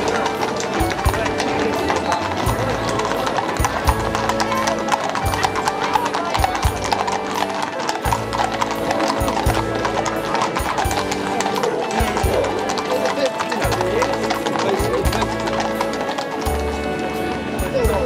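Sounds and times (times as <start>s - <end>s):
crowd chatter: 0.0s - 18.0s
horses' hooves on pavement: 0.0s - 18.0s
music: 0.0s - 18.0s.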